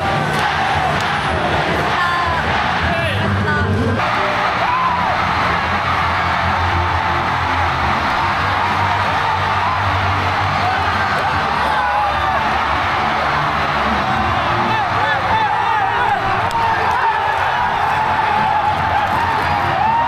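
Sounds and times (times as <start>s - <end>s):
loud music: 0.0s - 20.0s
stadium crowd cheering: 0.0s - 20.0s
players shouting and whooping: 4.0s - 20.0s.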